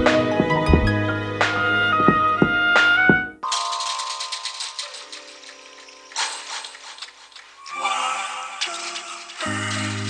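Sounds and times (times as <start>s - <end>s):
held instrumental chords: 0.0s - 3.9s.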